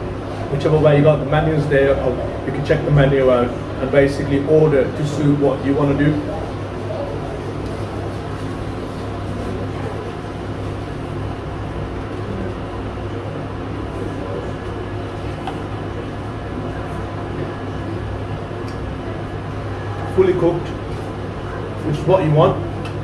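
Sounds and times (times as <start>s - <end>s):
ventilation hum: 0.0s - 23.0s.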